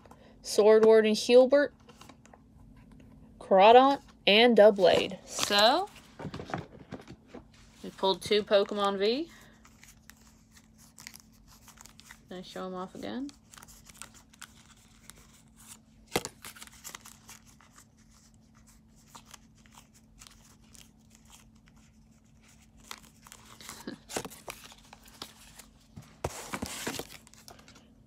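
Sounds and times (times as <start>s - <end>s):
cards rustling: 7.8s - 27.9s.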